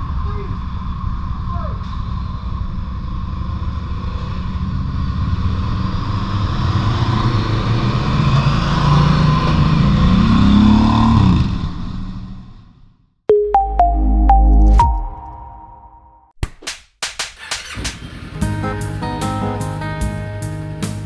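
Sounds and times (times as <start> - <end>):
motorcycle revving or passing: 3.0 - 12.7.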